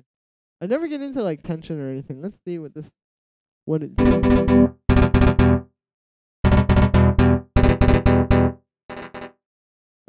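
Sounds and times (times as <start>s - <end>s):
synth string repeated notes: 4.0s - 5.6s, 6.4s - 9.3s.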